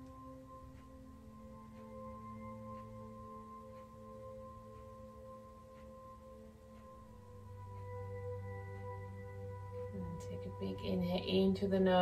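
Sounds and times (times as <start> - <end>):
faint light ticks: 0.0 - 9.0
ambient meditation music: 0.0 - 12.0
low drone: 0.0 - 12.0
singing bowl ringing tones: 0.0 - 12.0.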